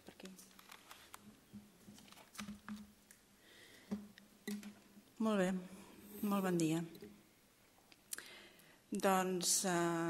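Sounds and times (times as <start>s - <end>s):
microphone handling clicks and knocks: 3.9s - 4.9s.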